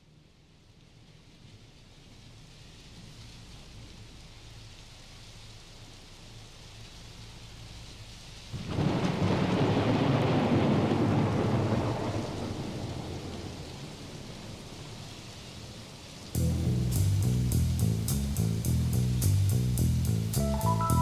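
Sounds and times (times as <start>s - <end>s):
faint steady rain: 0.0s - 21.0s
thunder clap rumbling: 8.6s - 16.9s.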